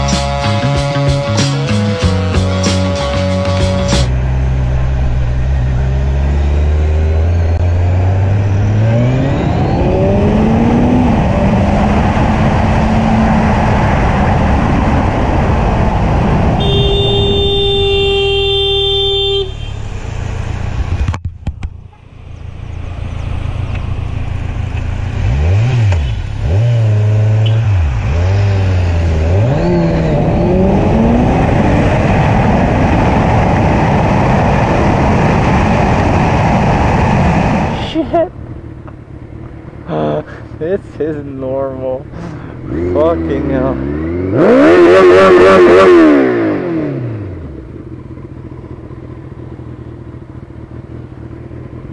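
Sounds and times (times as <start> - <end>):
vehicle horn blaring: 0.0 - 4.2, 16.6 - 20.1
motorcycle engine revving: 0.0 - 51.9
wind noise: 8.4 - 18.3, 29.3 - 38.1.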